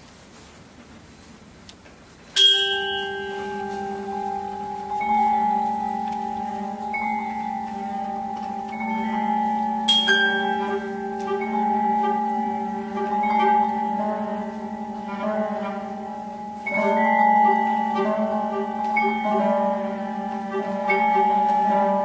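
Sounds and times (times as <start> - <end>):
bell-like percussion strike: 2.4 - 22.0
chamber music: 2.4 - 22.0.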